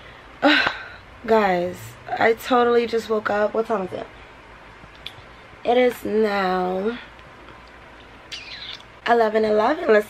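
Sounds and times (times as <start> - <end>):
high-pitched falling chirp: 8.3 - 8.8.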